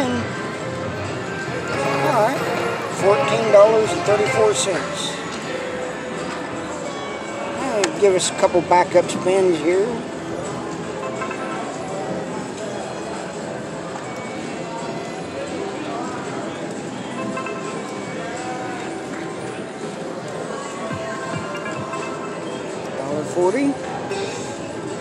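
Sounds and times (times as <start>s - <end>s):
other machines' tunes: 0.7s - 5.6s, 20.8s - 23.0s
slot machine electronic jingles: 1.5s - 5.2s, 11.0s - 12.1s, 21.0s - 23.2s.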